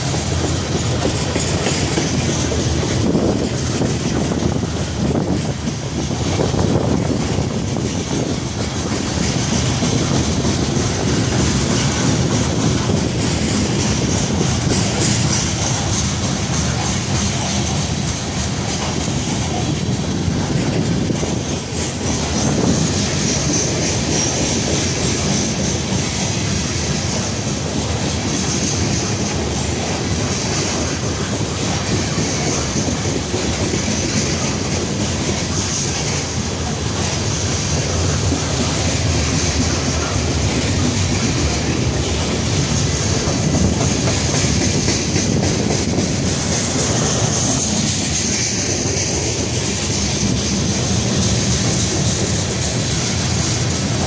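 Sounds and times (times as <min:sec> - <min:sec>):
freight train rumbling past: 0:00.0 - 0:54.0
wheels clacking over rail joints: 0:00.0 - 0:54.0
wheels hissing on rails: 0:00.0 - 0:54.0.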